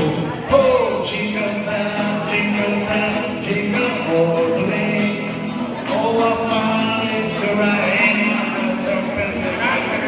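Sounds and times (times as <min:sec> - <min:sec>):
classical guitar: 0:00.0 - 0:10.0
man singing: 0:00.0 - 0:10.0.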